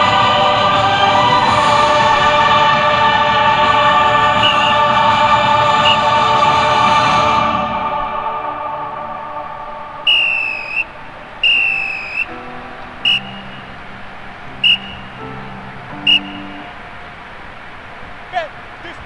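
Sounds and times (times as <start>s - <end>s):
choral music: 0.0s - 18.2s
whistle blasts: 4.3s - 5.0s, 5.8s - 6.1s, 10.0s - 13.8s, 14.5s - 15.2s, 16.0s - 16.7s.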